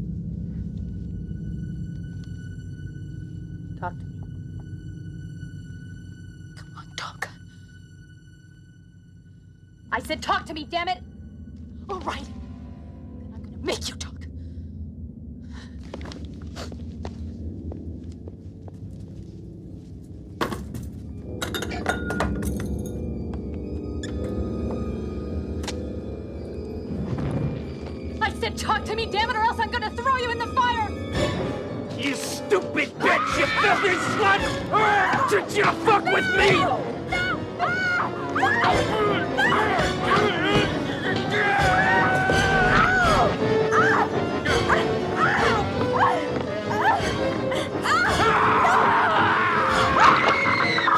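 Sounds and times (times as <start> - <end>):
tense film score: 0.0 - 50.9
glassy clinks and knocks: 21.4 - 23.0.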